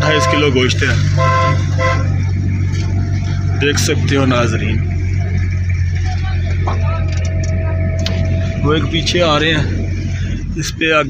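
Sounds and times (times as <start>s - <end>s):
car horn tooting: 0.0s - 2.4s
engine drone inside car: 0.0s - 11.0s.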